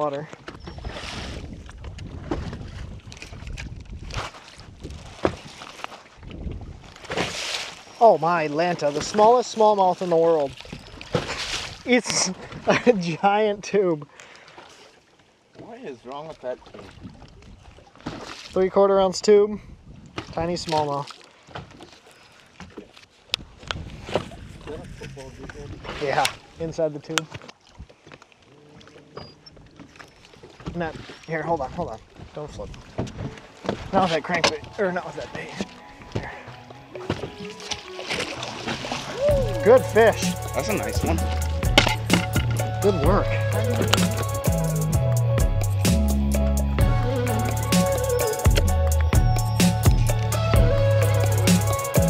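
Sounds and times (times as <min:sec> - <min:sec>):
waves lapping against boat: 0:00.0 - 0:52.0
wind on microphone: 0:00.6 - 0:05.6, 0:06.2 - 0:07.0, 0:16.9 - 0:17.8, 0:19.6 - 0:20.4, 0:23.4 - 0:26.0
fishing tackle clicking and knocking: 0:39.4 - 0:45.8, 0:47.3 - 0:50.4.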